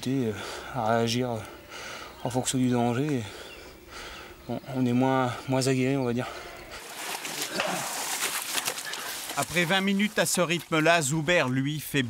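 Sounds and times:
rustling through mud and grass: 6.7 - 11.9.

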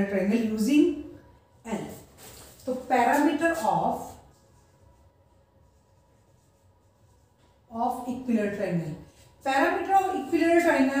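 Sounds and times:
woman speaking: 0.0 - 4.2, 7.7 - 11.0.

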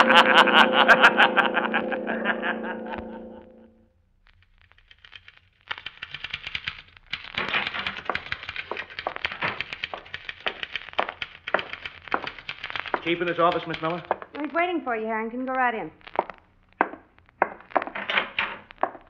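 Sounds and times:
man laughing: 0.0 - 3.6
held music chord: 0.0 - 3.8
typewriter clacking: 4.6 - 14.6, 16.1 - 19.0.

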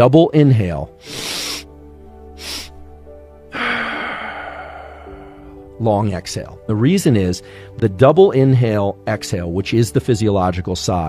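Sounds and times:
soft background music: 0.0 - 11.0
man inhaling sharply: 1.0 - 1.7, 2.4 - 2.8, 3.5 - 5.6
man exhaling long: 3.5 - 5.6.

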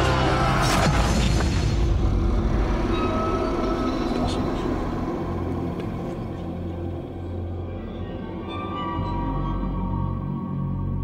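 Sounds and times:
low rumbling drone: 0.0 - 11.0.

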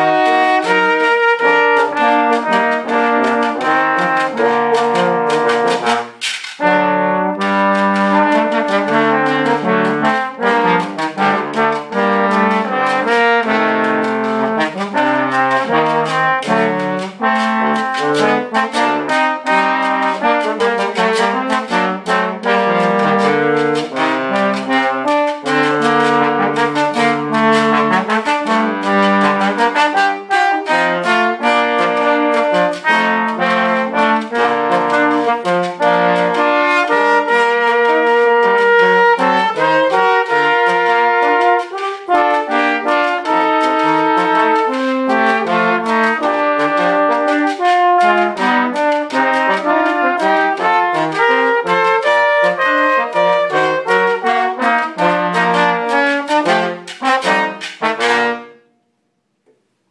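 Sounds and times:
trombone ensemble playing: 0.0 - 58.6.

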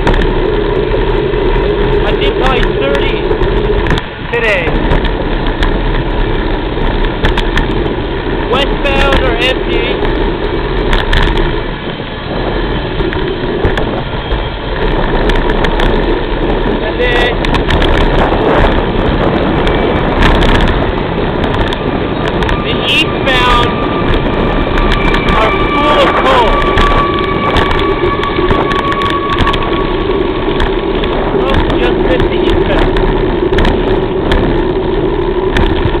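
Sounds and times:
freight train wheels clattering on rail: 0.0 - 36.0
thin steady squeal: 20.8 - 35.5.

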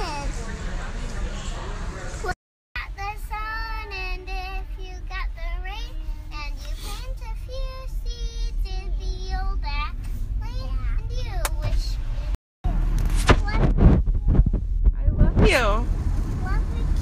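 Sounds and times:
child singing: 2.8 - 12.0
car cabin rumble: 9.0 - 17.0.

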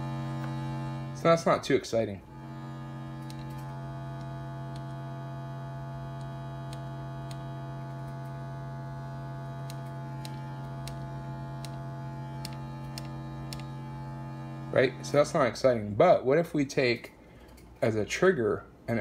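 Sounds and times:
synthesizer low drone: 0.0 - 1.6, 2.2 - 15.9.

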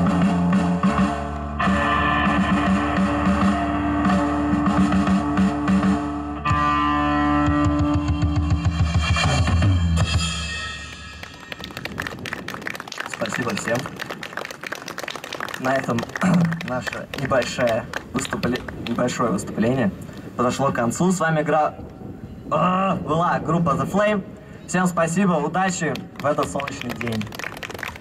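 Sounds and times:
bass guitar: 0.0 - 11.6
distorted electric guitars: 0.0 - 11.9
drums: 0.0 - 12.2.

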